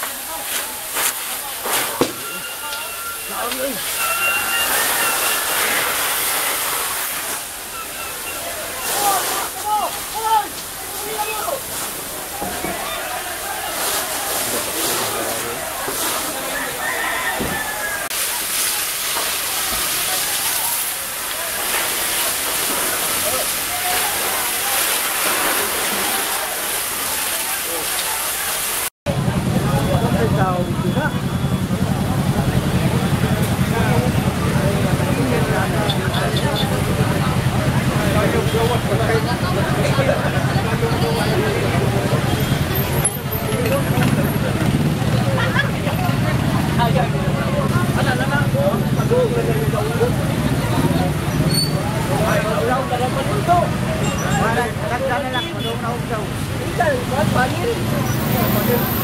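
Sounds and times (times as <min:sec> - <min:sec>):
fire rushing hiss: 0:00.0 - 0:16.4, 0:18.1 - 0:28.9
crowd chatter: 0:00.0 - 0:59.0
fire truck engine running: 0:29.1 - 0:50.7.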